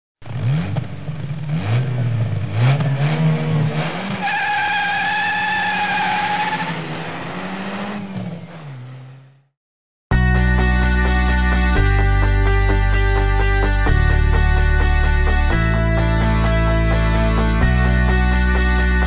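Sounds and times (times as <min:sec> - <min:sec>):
engine accelerating through gear changes: 0:00.2 - 0:04.3, 0:06.3 - 0:09.5
high tyre squeal: 0:02.8 - 0:09.2.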